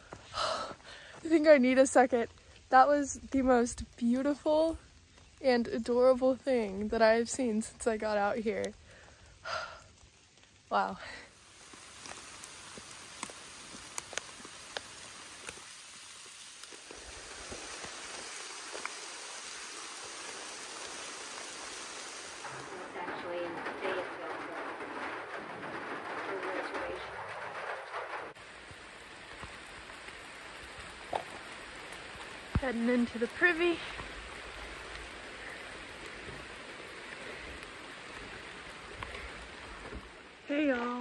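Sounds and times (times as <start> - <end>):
water drips ticking: 0.0 - 40.9
rain falling on foliage: 0.0 - 41.0.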